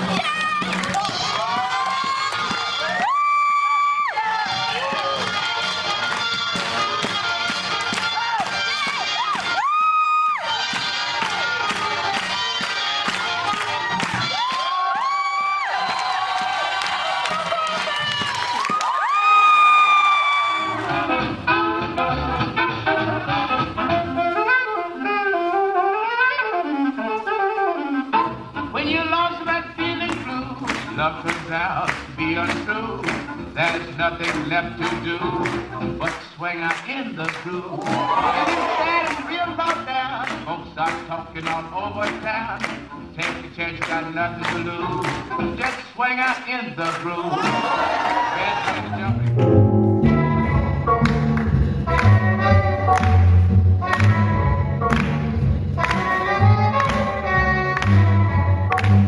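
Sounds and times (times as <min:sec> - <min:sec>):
crowd cheering and whooping: 0:00.0 - 0:05.4, 0:08.1 - 0:11.6, 0:13.5 - 0:21.2, 0:37.8 - 0:39.2, 0:47.3 - 0:49.1
swing music: 0:00.0 - 0:59.0.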